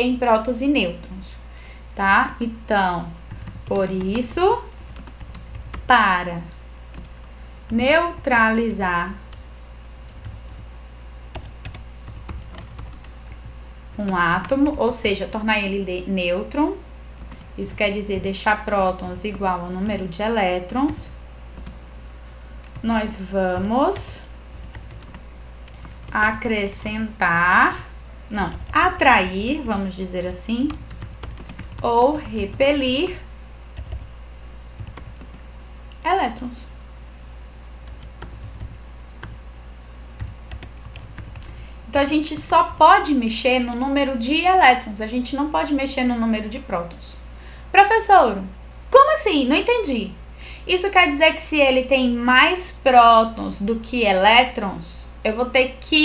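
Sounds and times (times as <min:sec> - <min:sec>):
low steady hum: 0:00.0 - 0:56.0
computer keyboard typing: 0:03.3 - 0:05.9, 0:06.9 - 0:08.5, 0:09.3 - 0:10.7, 0:11.3 - 0:15.1, 0:17.2 - 0:21.8, 0:22.6 - 0:27.8, 0:28.4 - 0:33.2, 0:33.8 - 0:34.2, 0:34.8 - 0:36.1, 0:37.8 - 0:39.4, 0:40.2 - 0:43.1.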